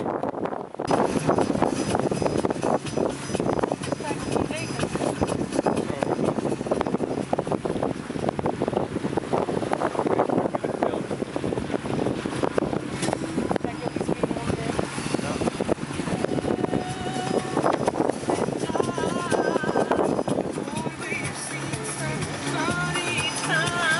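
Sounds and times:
low engine hum: 0.0 - 23.9
wind buffeting microphone: 0.0 - 23.9.

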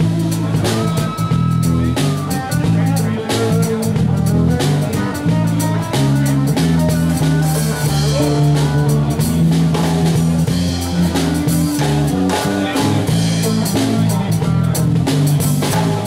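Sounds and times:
small live band playing: 0.0 - 16.0.

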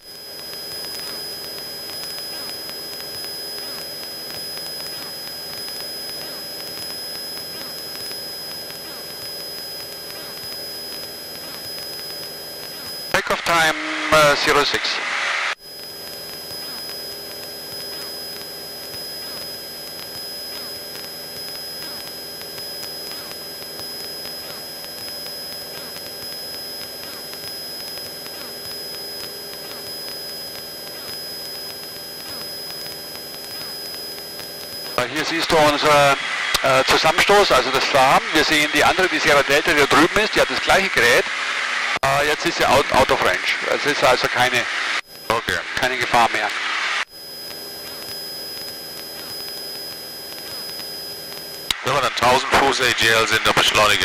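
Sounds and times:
high steady whine: 0.0 - 54.0.

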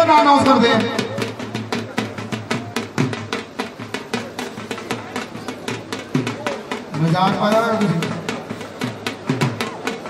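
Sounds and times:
drum beaten in fast rhythm: 0.0 - 10.0.

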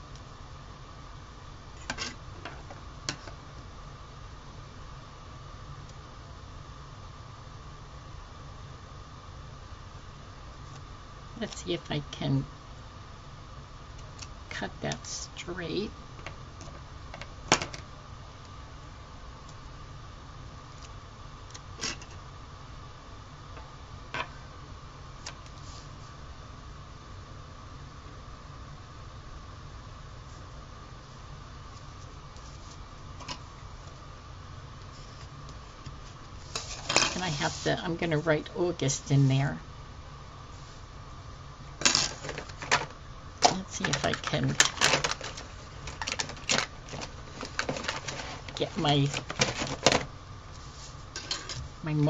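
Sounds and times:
low room hum: 0.0 - 52.0
plastic pens clattering: 41.8 - 50.1.

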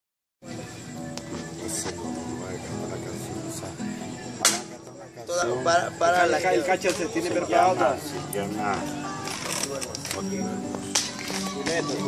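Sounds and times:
acoustic guitar playing: 0.4 - 12.0
sharp crack: 4.4 - 4.8, 10.8 - 11.9.

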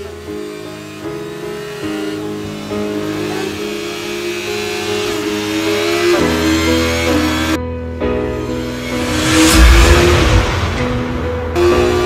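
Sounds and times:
background music: 0.0 - 12.0
vehicle accelerating: 8.4 - 12.0.

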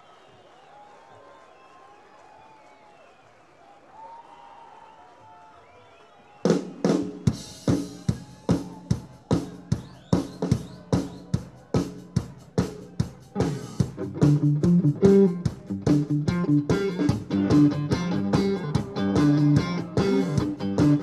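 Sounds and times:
faint crowd murmur: 0.0 - 21.0
rock drum beat with cymbals: 6.5 - 21.0.

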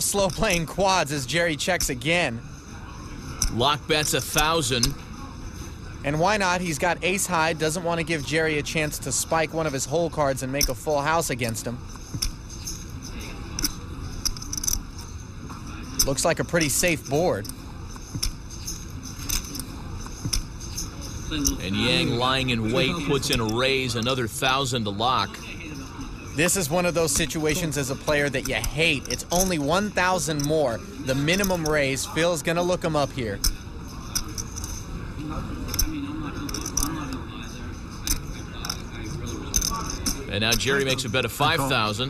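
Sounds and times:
poker chips clicking: 35.7 - 37.1, 39.5 - 41.0.

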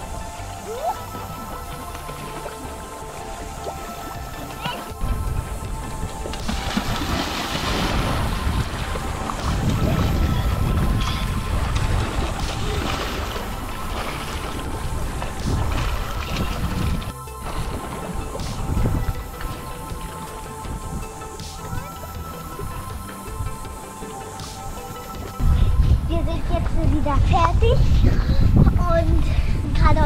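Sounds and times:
background music with steady tones: 0.0 - 30.0.

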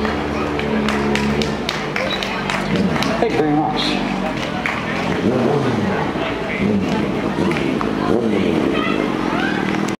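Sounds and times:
car passing and accelerating: 0.0 - 10.0
people's voices: 0.0 - 10.0.

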